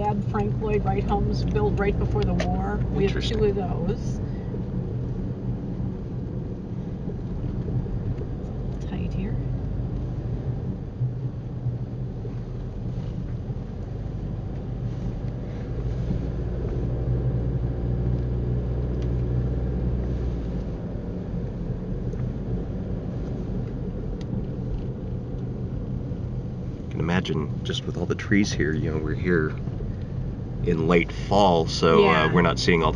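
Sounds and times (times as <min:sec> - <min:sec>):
car cabin engine and tyre rumble: 0:00.0 - 0:32.9.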